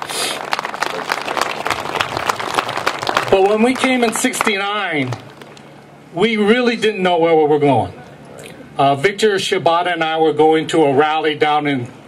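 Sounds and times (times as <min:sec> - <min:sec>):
audience applauding: 0:00.0 - 0:05.6.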